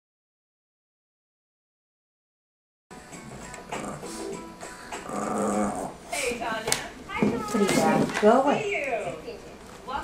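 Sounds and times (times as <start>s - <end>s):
dog growling and grumbling: 3.2s - 4.2s, 5.0s - 6.1s.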